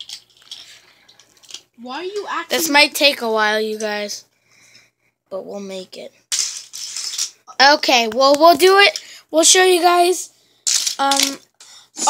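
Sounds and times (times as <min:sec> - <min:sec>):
plastic toy track clicks and rustles: 0:00.0 - 0:01.7, 0:06.3 - 0:07.4, 0:10.6 - 0:11.4
child speaking: 0:01.8 - 0:04.2, 0:05.3 - 0:06.1, 0:07.5 - 0:10.3, 0:11.0 - 0:11.4.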